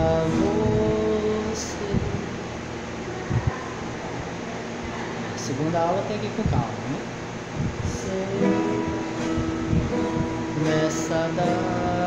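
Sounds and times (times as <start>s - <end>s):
acoustic guitar strumming: 0.0s - 4.8s, 6.2s - 12.0s.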